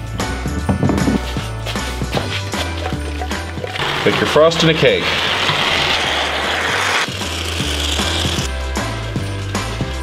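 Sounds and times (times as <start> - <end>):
background music with bass: 0.0 - 10.0
spray foam can hissing: 3.8 - 8.5.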